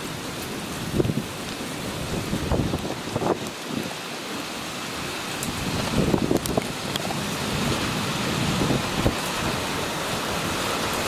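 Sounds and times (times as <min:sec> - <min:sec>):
wind and rain: 0:00.0 - 0:11.0
wind gusts buffeting microphone: 0:00.1 - 0:11.0.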